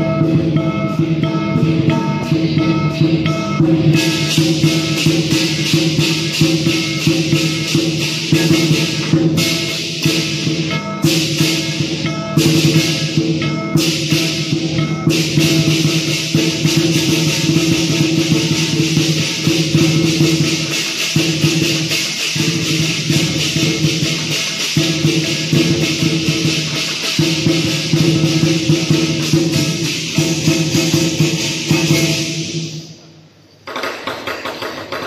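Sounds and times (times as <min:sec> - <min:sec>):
lion dance percussion ensemble: 0:00.0 - 0:35.0.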